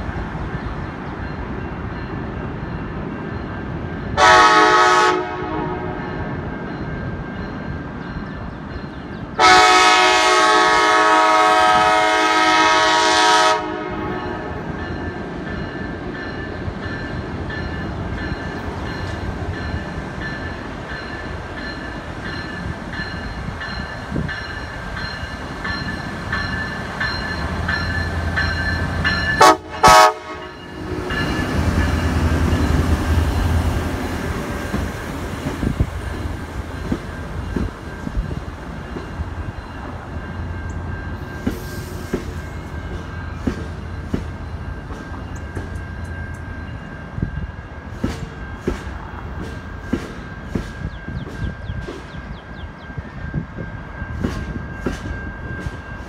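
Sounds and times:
train rumble: 0.0s - 56.0s
locomotive horn blast: 4.2s - 6.1s, 9.4s - 14.6s, 29.4s - 31.0s.

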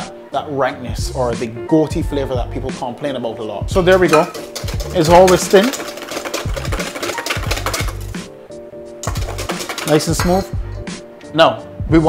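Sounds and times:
background music with bass: 0.0s - 12.0s
whisk ticking against steel bowl: 3.9s - 8.2s, 9.0s - 10.5s.

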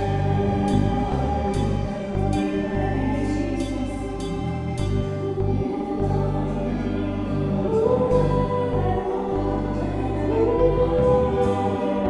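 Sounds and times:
sustained accompaniment: 0.0s - 12.0s
voices singing worship song: 0.0s - 12.0s.

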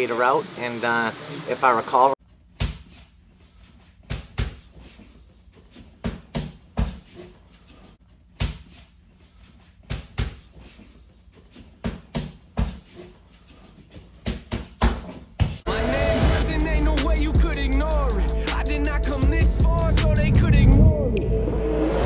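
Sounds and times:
boxing gloves hitting focus mitts: 2.6s - 3.0s, 4.0s - 4.7s, 6.0s - 7.1s, 9.8s - 10.5s.

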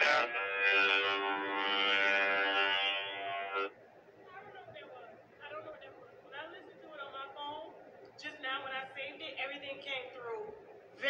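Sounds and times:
steady buzzing drone: 0.0s - 5.6s.

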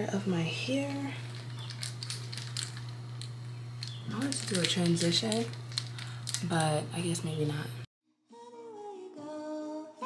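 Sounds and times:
low electrical hum: 0.0s - 7.9s
plastic hair rollers clicking: 1.3s - 6.8s.

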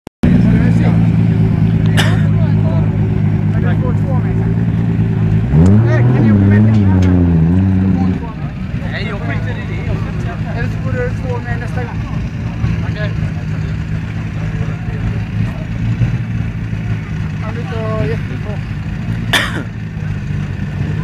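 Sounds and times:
car engine revving: 0.2s - 21.0s.

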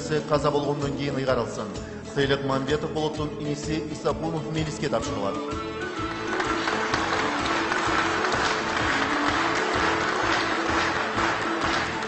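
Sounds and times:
music with held notes: 0.0s - 12.0s
audience applauding: 5.6s - 12.0s.

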